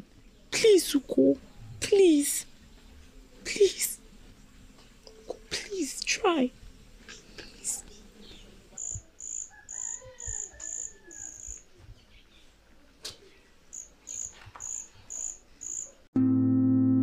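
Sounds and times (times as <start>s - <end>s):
cricket chirping: 8.8s - 11.6s, 13.7s - 16.0s
loud keyboard music: 16.2s - 17.0s.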